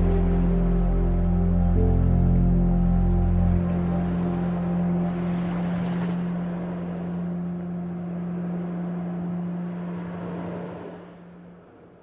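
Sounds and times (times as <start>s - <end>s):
ambient meditation music: 0.0s - 12.0s
sustained low drone: 0.0s - 12.0s.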